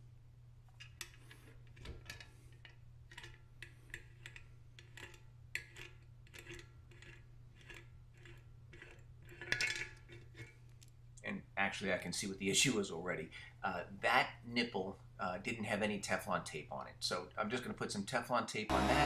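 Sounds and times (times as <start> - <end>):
metal pipe fittings clinking: 0.7 - 10.9
steady low hum: 18.7 - 19.0.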